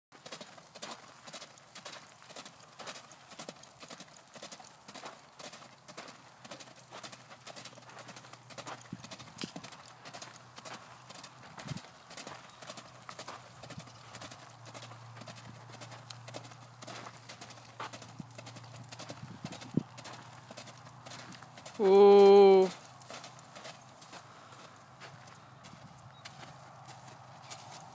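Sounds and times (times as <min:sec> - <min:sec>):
horse hoofbeats on dirt: 0:00.1 - 0:27.9
person humming: 0:21.8 - 0:22.8.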